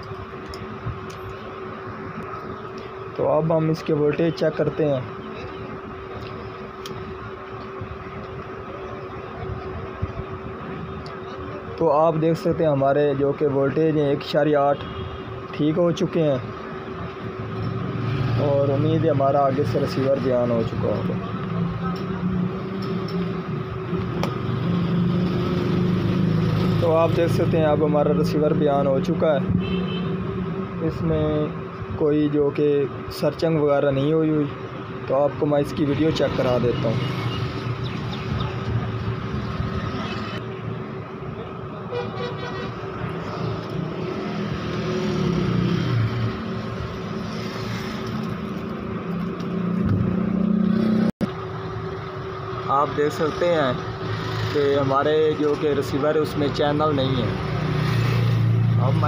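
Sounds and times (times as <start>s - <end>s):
low mechanical hum: 0.0s - 44.8s, 51.2s - 57.2s
road traffic: 0.0s - 59.0s
vehicles passing: 0.0s - 59.0s.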